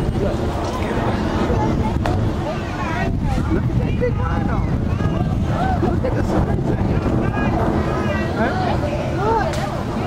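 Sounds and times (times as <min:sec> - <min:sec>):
distant voices chattering: 0:00.0 - 0:10.0
wind buffeting microphone: 0:00.0 - 0:10.0.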